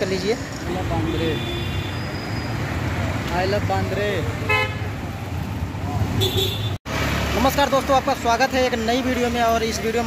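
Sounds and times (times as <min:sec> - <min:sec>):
road traffic engines: 0:00.0 - 0:10.0.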